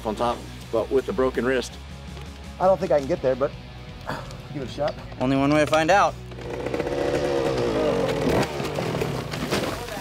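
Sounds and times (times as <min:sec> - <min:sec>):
dirt bike engine revving: 0:06.3 - 0:09.4
bike falling in dirt: 0:06.4 - 0:10.0.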